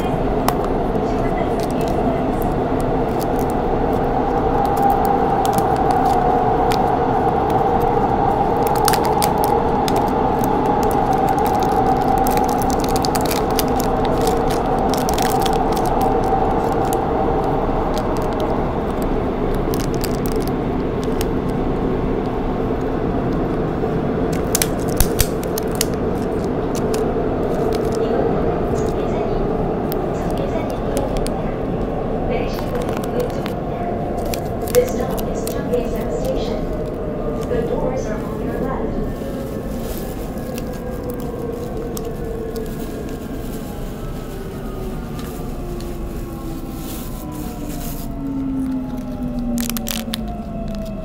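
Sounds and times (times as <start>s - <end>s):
subway train rumble: 0.0s - 51.0s
plastic capsule and wrapper rustling: 0.4s - 23.6s, 24.2s - 29.1s, 29.8s - 31.4s, 32.4s - 51.0s.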